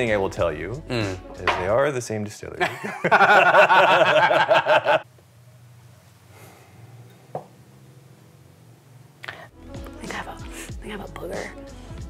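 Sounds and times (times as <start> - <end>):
man laughing hard: 2.6 - 5.0.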